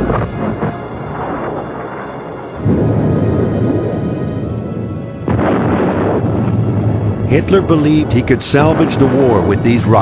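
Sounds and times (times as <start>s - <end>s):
rocket engine rumble: 0.0s - 10.0s.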